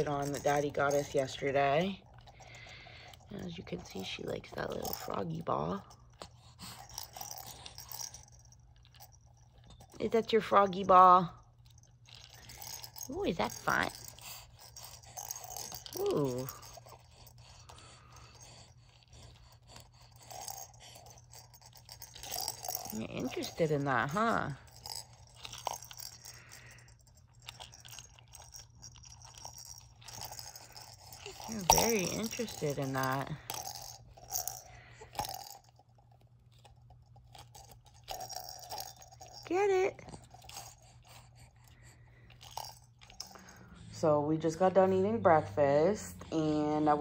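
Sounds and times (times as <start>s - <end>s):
plastic baby rattle clicking: 6.7s - 8.4s, 20.1s - 23.6s, 24.7s - 35.8s.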